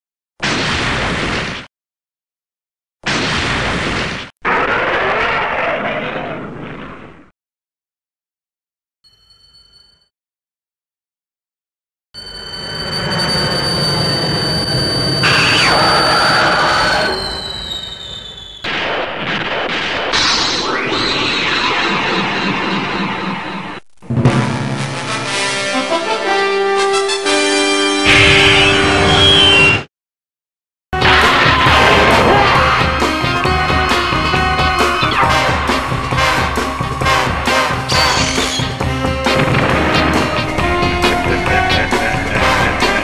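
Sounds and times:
shrill creature screech: 4.5 - 6.0, 15.2 - 18.6, 37.9 - 38.8
explosion sound effect: 15.2 - 25.4, 31.0 - 43.0.

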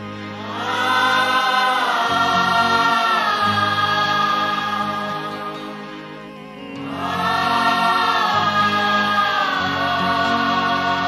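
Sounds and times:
wordless choir-like voices: 0.0 - 11.0.

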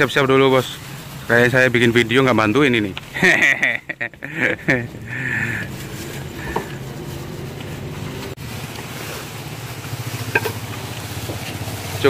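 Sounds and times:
engine idling: 4.3 - 12.0.

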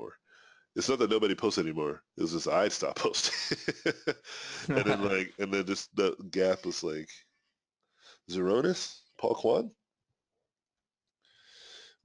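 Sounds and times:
faint breath drawn in: 4.3 - 4.7, 11.3 - 12.0.

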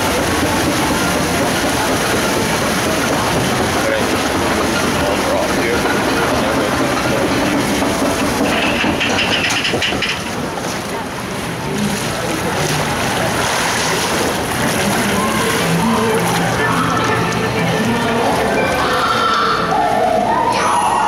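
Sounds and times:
indistinct voices: 0.0 - 21.0
water and machinery noise: 0.0 - 21.0.

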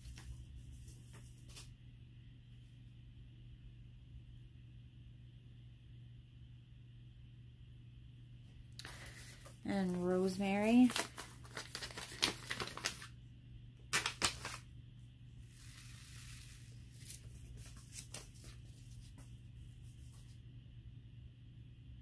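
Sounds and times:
paper crinkling and rustling: 8.9 - 13.2, 13.9 - 14.7, 15.5 - 20.4.

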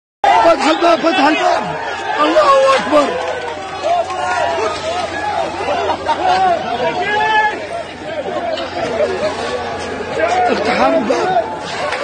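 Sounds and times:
crowd shouting: 0.2 - 12.0.

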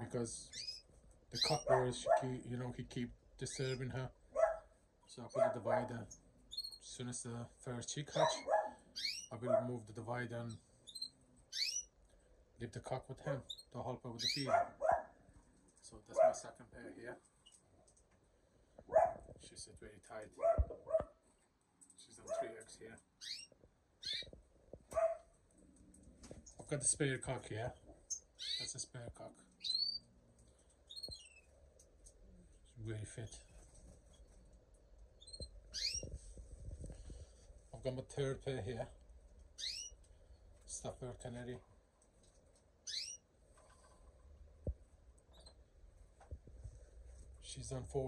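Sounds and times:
finch chirping: 0.4 - 2.2, 6.1 - 6.9, 8.2 - 9.4, 10.8 - 11.9, 13.4 - 15.0, 23.2 - 24.4, 28.1 - 28.8, 29.5 - 30.1, 30.9 - 31.5, 35.2 - 36.1, 39.6 - 40.0, 42.8 - 43.2.

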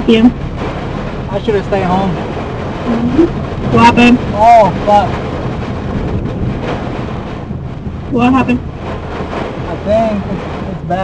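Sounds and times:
heavy rain on a car: 0.0 - 11.0
strong storm wind: 0.0 - 11.0.

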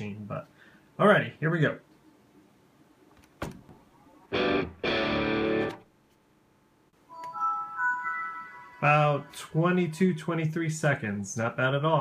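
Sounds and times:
musical held tones: 7.0 - 10.2
startup chime: 7.1 - 9.9.

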